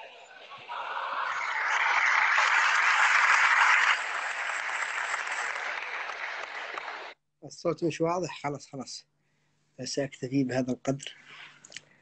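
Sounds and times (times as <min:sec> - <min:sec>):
applause: 0:00.7 - 0:07.2.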